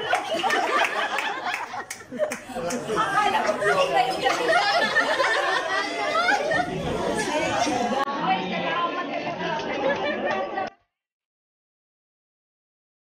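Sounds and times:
people chattering: 0:00.0 - 0:10.8.

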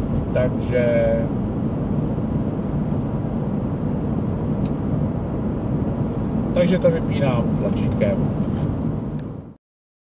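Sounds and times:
car road and engine noise: 0:00.0 - 0:09.6.

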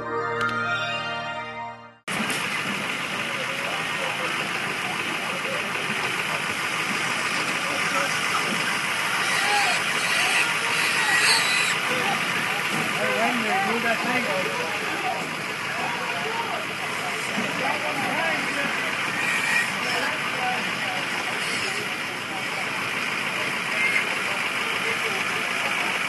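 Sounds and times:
station ident jingle: 0:00.0 - 0:02.2
idling vehicles and traffic: 0:02.1 - 0:26.0
faint voices: 0:02.7 - 0:26.0.

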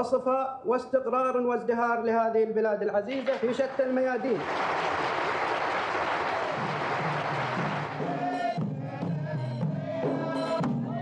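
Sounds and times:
audience applauding: 0:03.2 - 0:08.6.

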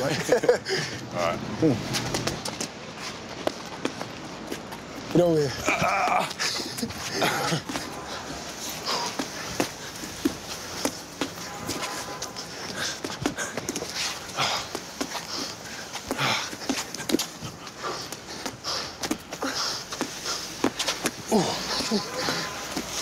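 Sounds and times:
person panting: 0:06.3 - 0:11.0, 0:12.3 - 0:23.0.

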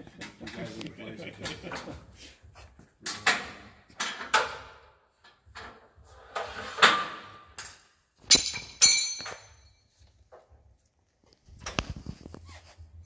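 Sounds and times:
metal knocking and clinking: 0:07.6 - 0:09.8.

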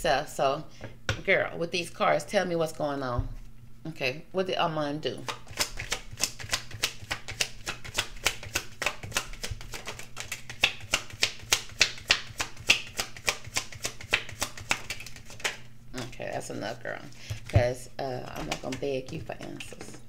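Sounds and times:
cards being shuffled: 0:05.3 - 0:15.7, 0:17.1 - 0:20.0.

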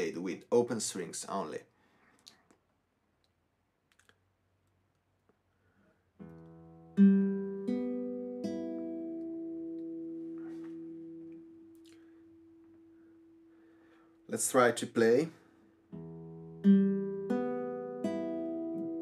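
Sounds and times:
classical guitar strings plucked: 0:06.2 - 0:12.7, 0:15.9 - 0:19.0.

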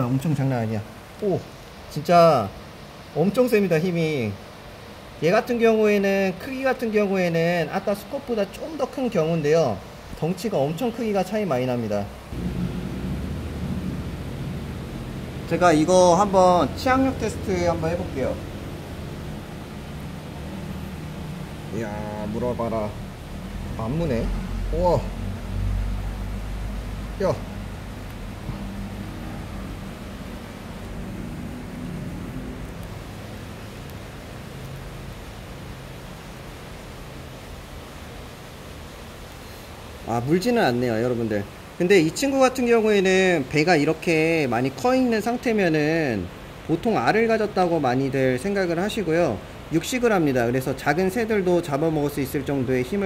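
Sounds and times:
low rumble and hiss: 0:00.0 - 0:53.0
low mechanical rumble: 0:12.3 - 0:34.2.

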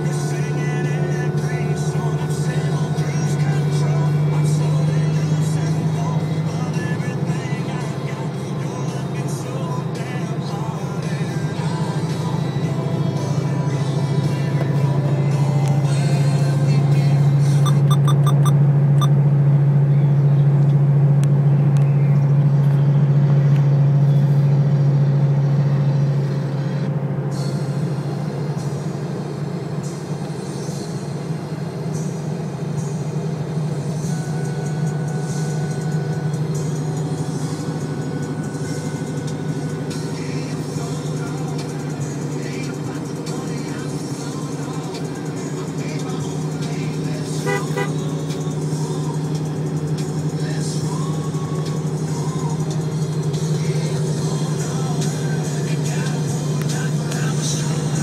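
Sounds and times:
car engine and exhaust droning: 0:00.0 - 0:58.0.

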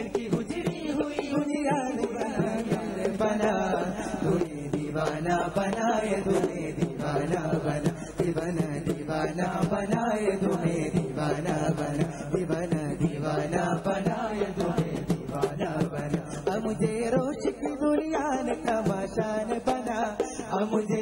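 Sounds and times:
steady percussion beat: 0:00.0 - 0:21.0
voices singing wordless line: 0:00.0 - 0:21.0.

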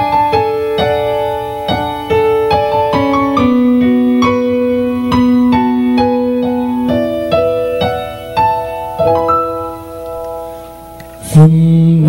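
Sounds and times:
electronic keyboard piano chords: 0:00.0 - 0:11.3.

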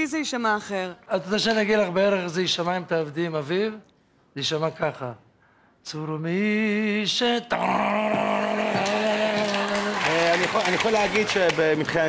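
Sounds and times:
audience applause and cheering: 0:08.3 - 0:12.0.

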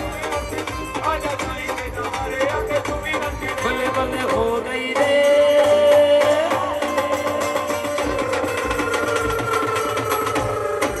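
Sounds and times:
fast drum beats: 0:00.0 - 0:11.0.

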